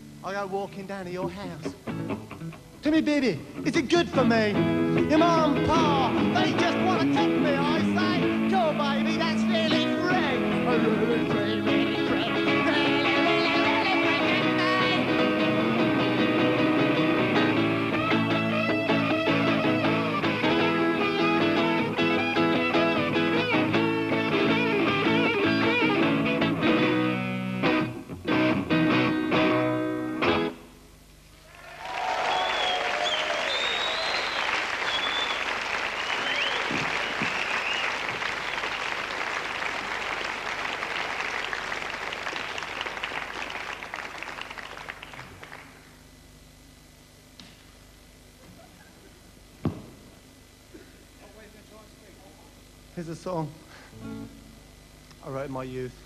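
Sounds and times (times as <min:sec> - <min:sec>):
guitar duo playing folk-rock: 0:01.1 - 0:02.8, 0:03.5 - 0:30.6, 0:53.9 - 0:54.6
audience applauding: 0:31.4 - 0:46.0
whistles from audience: 0:31.8 - 0:38.8.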